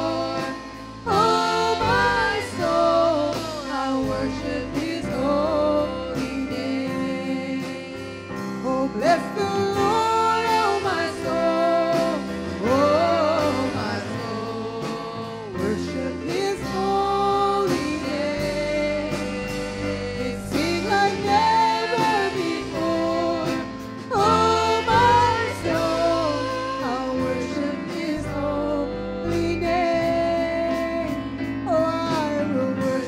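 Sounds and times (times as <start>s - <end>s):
keyboard and backing band: 0.0s - 33.0s
woman singing: 0.0s - 33.0s.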